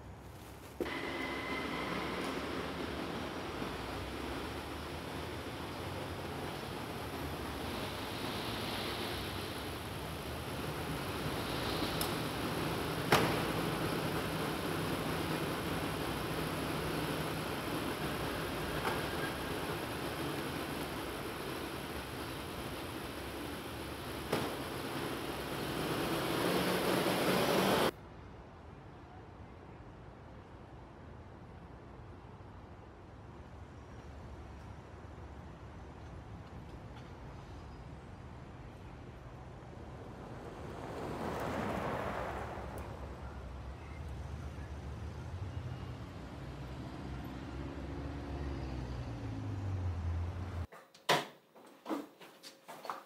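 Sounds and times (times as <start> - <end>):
vehicle and car park noise: 0.0 - 28.1, 31.5 - 52.1.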